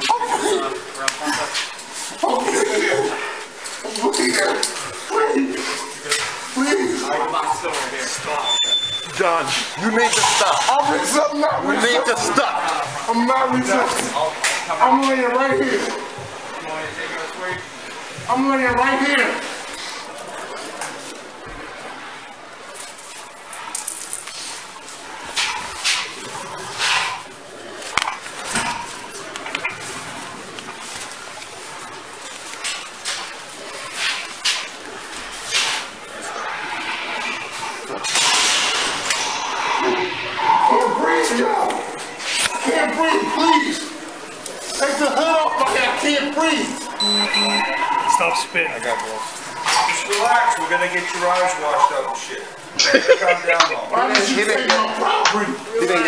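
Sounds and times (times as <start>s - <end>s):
men talking: 0.0s - 19.6s, 40.6s - 56.0s
rustling and movement: 9.0s - 40.4s.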